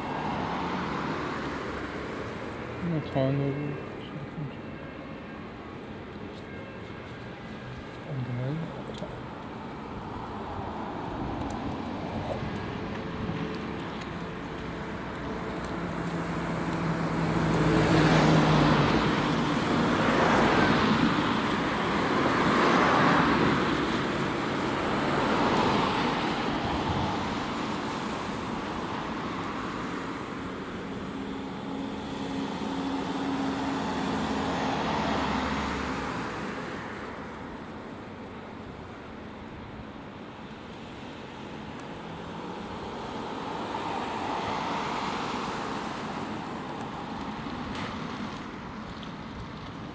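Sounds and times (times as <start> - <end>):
vehicles passing by: 0.0 - 49.9.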